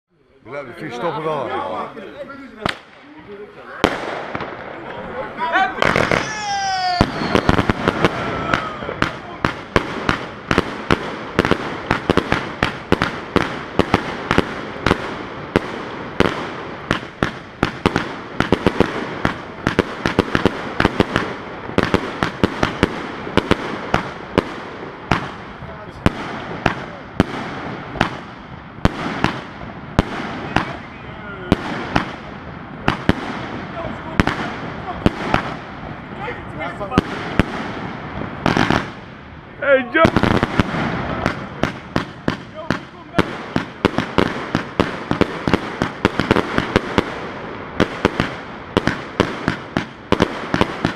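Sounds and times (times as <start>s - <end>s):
firework cake shots firing: 2.6s - 36.0s, 36.7s - 39.2s, 39.8s - 50.9s
firework whistle: 5.8s - 9.1s, 30.1s - 31.3s.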